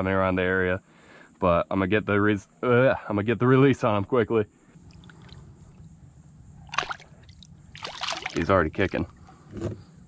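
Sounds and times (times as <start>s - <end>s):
fish tail splash: 6.7s - 8.6s
water splashing: 6.7s - 9.0s.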